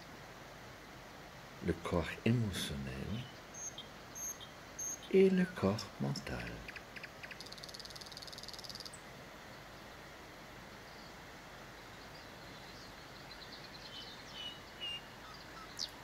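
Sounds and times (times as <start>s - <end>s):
soft outdoor hiss: 0.0s - 16.0s.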